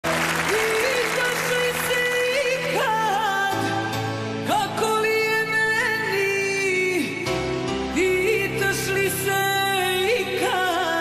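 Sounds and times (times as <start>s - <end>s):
studio audience applauding: 0.0s - 3.3s
band music with held melody: 0.0s - 11.0s.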